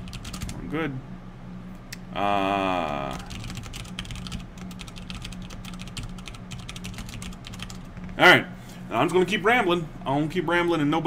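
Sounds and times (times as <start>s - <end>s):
rapid keyboard typing: 0.0s - 0.6s, 3.1s - 8.0s
low steady hum: 0.0s - 11.0s.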